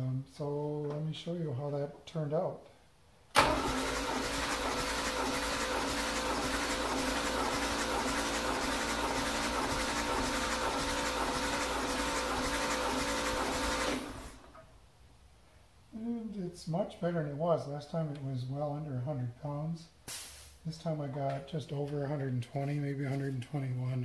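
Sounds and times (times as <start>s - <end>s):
engine cranked by starter: 3.3s - 14.7s.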